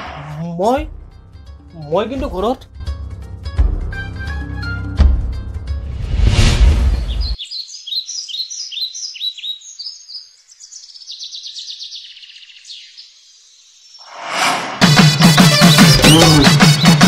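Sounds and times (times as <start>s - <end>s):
loud rushing noise: 5.8s - 7.3s, 14.1s - 16.5s
birds chirping and trilling: 6.7s - 14.2s, 15.3s - 17.0s.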